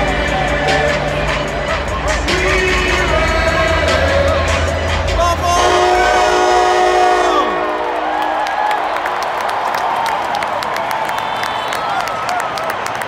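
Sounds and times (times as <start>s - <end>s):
crowd noise: 0.0s - 13.0s
train horn over sound system: 5.2s - 8.4s.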